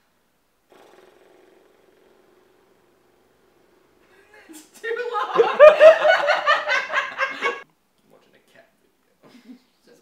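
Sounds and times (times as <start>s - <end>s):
cat purring through phone speaker: 0.7s - 3.9s.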